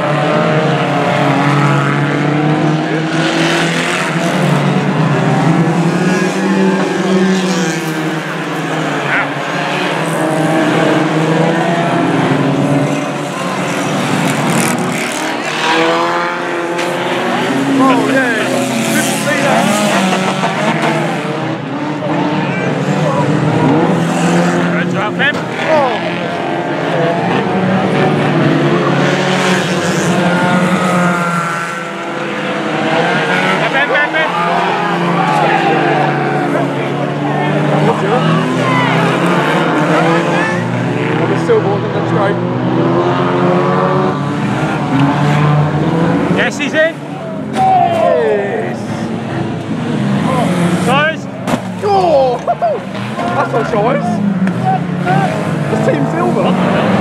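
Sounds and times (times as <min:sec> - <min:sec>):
racing car engines revving: 0:00.0 - 0:57.0
tyres skidding: 0:00.0 - 0:57.0.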